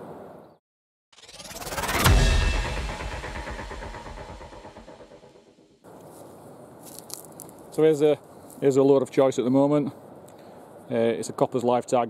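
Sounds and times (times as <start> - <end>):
deep ringing boom: 1.2 - 5.8.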